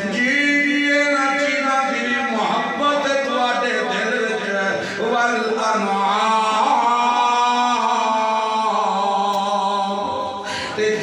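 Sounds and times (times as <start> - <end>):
man chanting into microphone: 0.0 - 11.0.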